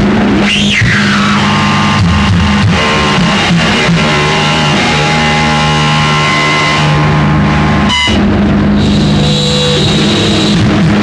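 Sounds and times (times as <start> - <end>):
distorted noise rock tones: 0.0 - 11.0
drums: 0.0 - 11.0.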